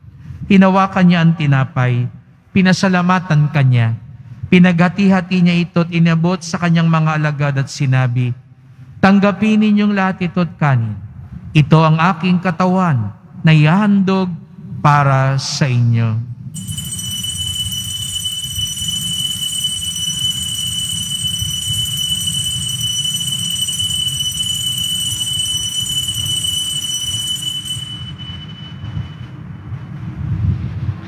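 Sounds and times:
bell ringing steady high tone: 16.6s - 29.8s.

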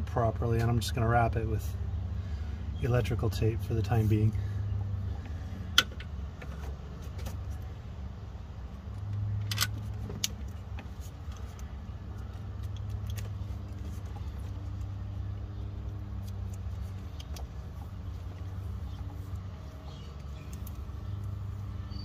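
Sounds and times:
tape clicks and crackles: 8.8s - 15.2s, 15.8s - 21.5s.

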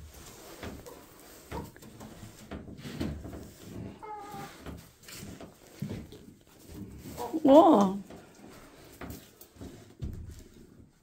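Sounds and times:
rustling: 0.0s - 11.0s.

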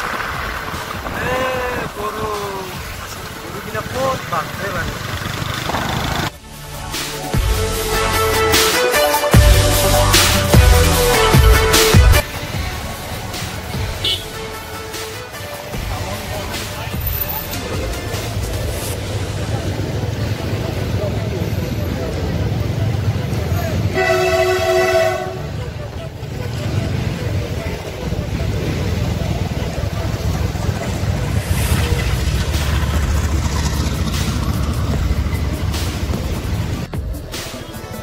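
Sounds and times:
motorcycle engine rumble: 0.0s - 6.4s, 12.2s - 37.8s
wind: 0.0s - 38.0s
vehicle horn chord: 13.9s - 15.0s, 23.9s - 25.8s.

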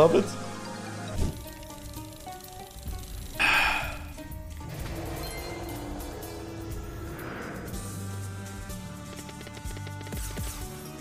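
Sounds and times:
slot machine game music: 4.1s - 11.0s.

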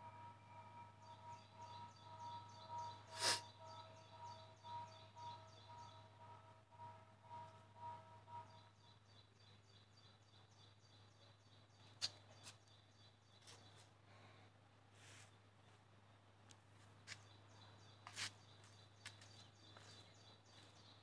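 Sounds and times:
repeated chirping call: 0.5s - 6.4s.

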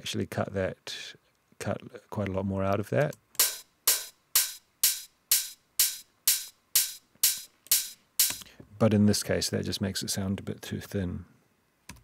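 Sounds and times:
open hi-hat hits: 3.4s - 8.6s.

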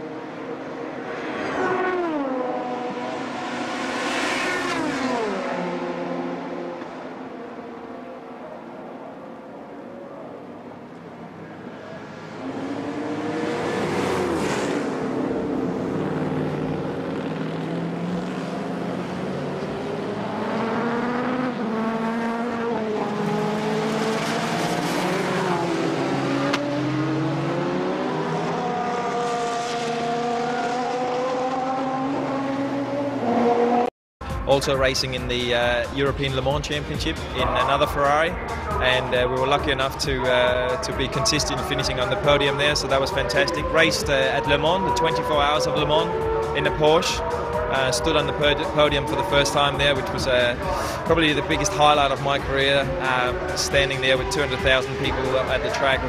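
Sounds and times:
racing car engines passing by: 0.0s - 56.0s.

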